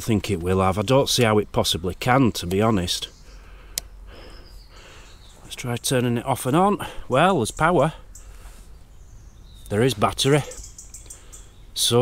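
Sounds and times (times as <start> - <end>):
soft breath: 3.2 - 5.4, 8.0 - 8.8.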